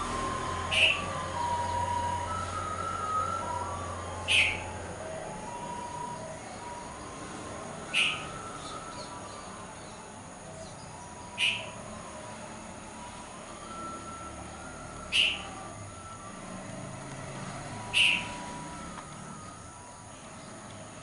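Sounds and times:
sharp bird chirps: 0.6 - 2.0, 4.2 - 4.7, 7.9 - 10.0, 10.6 - 11.8, 15.1 - 15.5, 17.8 - 18.6.

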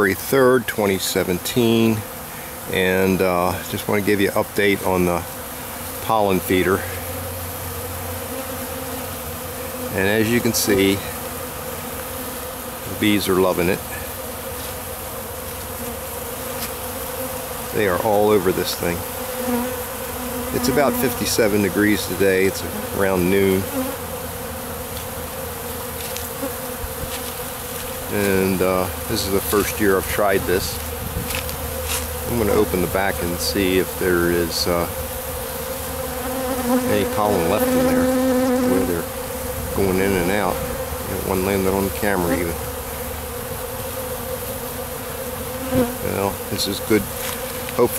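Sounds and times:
bees buzzing: 0.0 - 47.9.

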